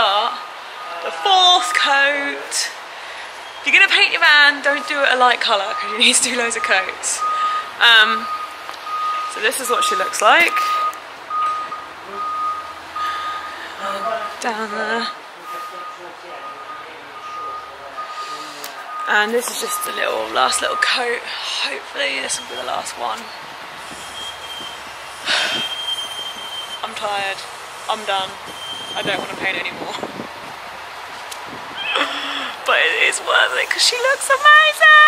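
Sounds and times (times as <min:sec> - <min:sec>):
reversing alarm beeping: 0:00.2 - 0:01.2, 0:04.6 - 0:21.2, 0:22.2 - 0:23.4, 0:24.0 - 0:27.0, 0:28.2 - 0:29.5
loud breathy sigh: 0:31.9 - 0:32.6.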